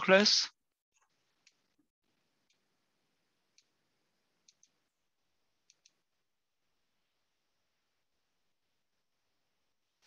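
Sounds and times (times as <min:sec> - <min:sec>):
faint sharp clicks: 0:05.6 - 0:06.0.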